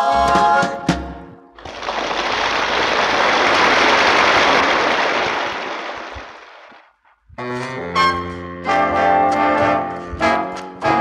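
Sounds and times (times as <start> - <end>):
audience applause: 1.6 - 6.8.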